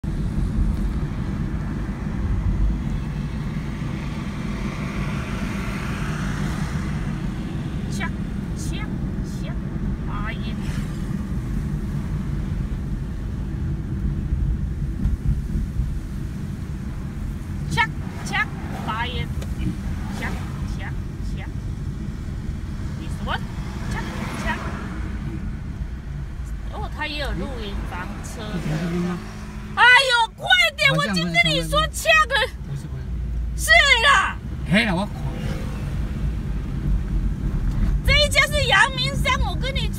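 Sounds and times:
car engine and tyres rumbling: 0:00.0 - 0:39.9
voices: 0:07.8 - 0:10.9, 0:17.6 - 0:21.6, 0:22.9 - 0:25.5, 0:26.4 - 0:35.8, 0:38.0 - 0:39.9.

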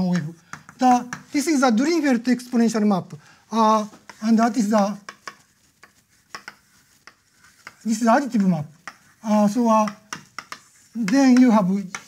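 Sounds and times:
chalk tapping on blackboard: 0:00.0 - 0:12.0.

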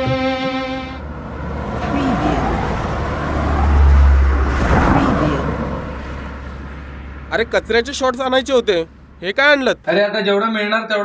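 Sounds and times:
vehicle passing close: 0:00.0 - 0:09.9
road traffic rumble: 0:00.0 - 0:10.0.

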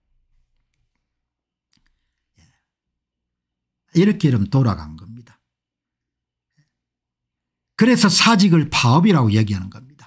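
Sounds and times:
man talking: 0:03.9 - 0:05.4, 0:07.8 - 0:10.0.

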